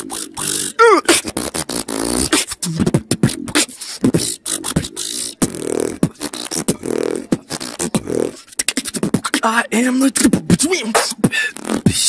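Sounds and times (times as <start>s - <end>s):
beatboxed pitched tone: 0.0s - 12.0s
human beatboxing: 0.0s - 12.0s.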